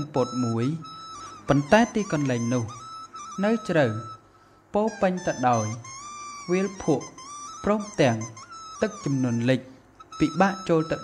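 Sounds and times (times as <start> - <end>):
person narrating: 0.0 - 0.9, 1.5 - 2.8, 3.4 - 4.1, 4.7 - 5.9, 6.5 - 11.0
background music: 0.0 - 4.2, 4.8 - 11.0.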